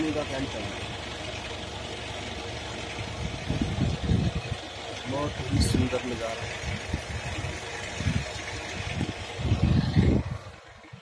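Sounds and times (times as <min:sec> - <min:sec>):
wind rumbling on microphone: 0:03.1 - 0:11.0.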